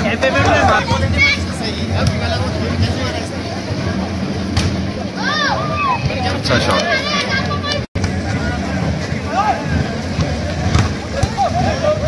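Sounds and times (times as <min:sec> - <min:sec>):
spectators talking and shouting: 0:00.0 - 0:12.0.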